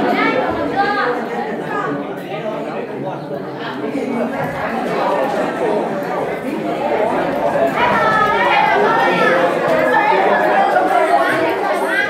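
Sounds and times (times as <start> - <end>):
student chatter: 0.0 - 12.0.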